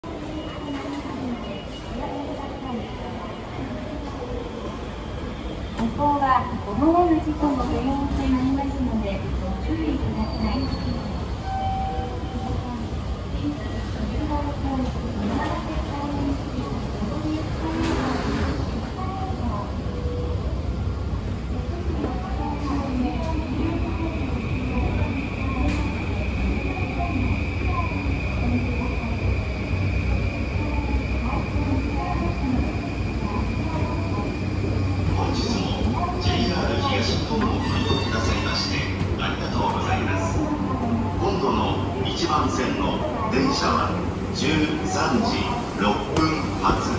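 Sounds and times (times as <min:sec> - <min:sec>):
train rumbling: 0:00.0 - 0:46.9.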